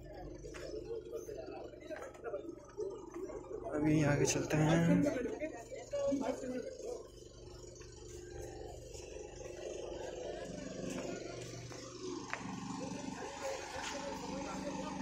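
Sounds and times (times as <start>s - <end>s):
faint distant voices: 0.0s - 15.0s.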